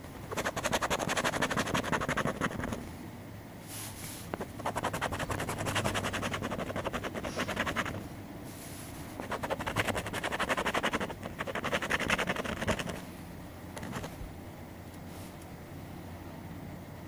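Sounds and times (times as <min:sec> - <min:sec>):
coin scratching lottery ticket: 0:00.3 - 0:02.8, 0:04.3 - 0:08.0, 0:09.2 - 0:13.0, 0:13.8 - 0:14.1.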